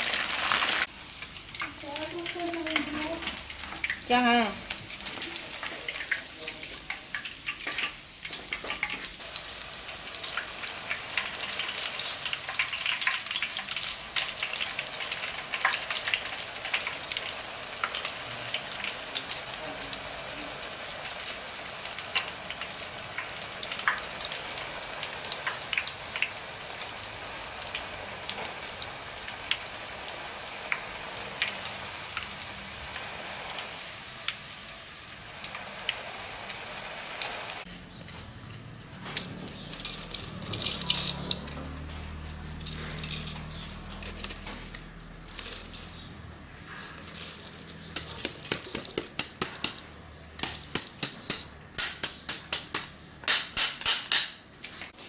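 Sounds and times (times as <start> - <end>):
hot oil sizzling and popping: 0.0 - 55.0.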